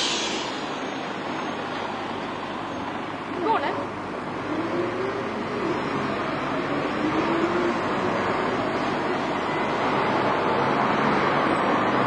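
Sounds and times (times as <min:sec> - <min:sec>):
air brake hiss: 0:00.0 - 0:00.9
diesel buses passing: 0:00.0 - 0:12.0
rising bus whine: 0:00.0 - 0:12.0.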